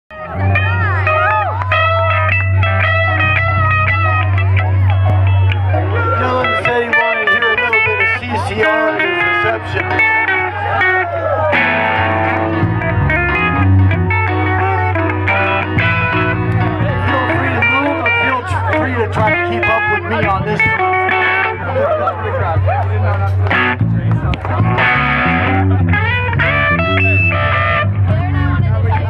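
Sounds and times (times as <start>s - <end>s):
bass line: 0.1s - 29.0s
electric guitar: 0.1s - 29.0s.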